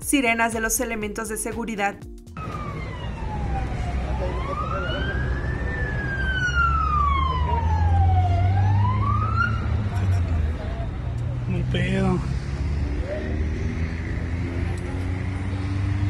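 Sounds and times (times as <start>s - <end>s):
emergency vehicle siren wailing: 2.4s - 11.3s, 12.4s - 16.0s.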